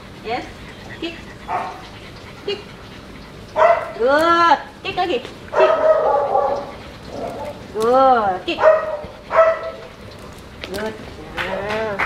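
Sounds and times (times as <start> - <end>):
dog barking: 1.4 - 1.8, 3.6 - 4.0, 5.5 - 6.7, 8.5 - 9.8.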